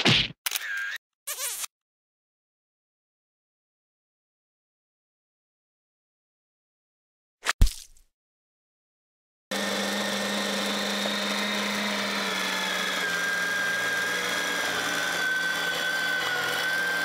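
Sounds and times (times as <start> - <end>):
electric meat grinder whining: 9.5 - 17.0.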